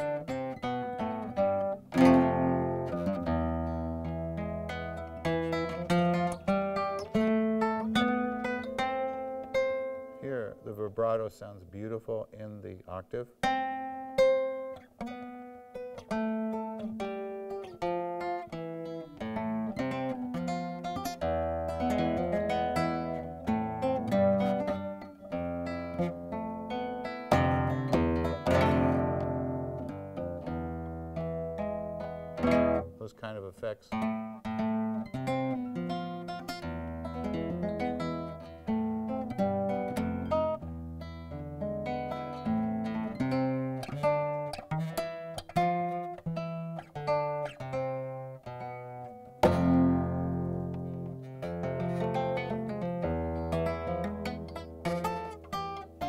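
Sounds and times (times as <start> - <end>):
flamenco guitar plucked notes: 0.0 - 56.0
guitar strummed chords: 0.0 - 56.0.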